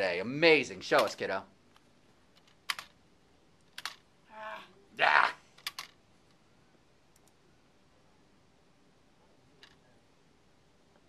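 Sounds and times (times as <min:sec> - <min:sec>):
computer keyboard clicks: 0:02.4 - 0:02.9, 0:03.8 - 0:04.0, 0:05.6 - 0:06.0.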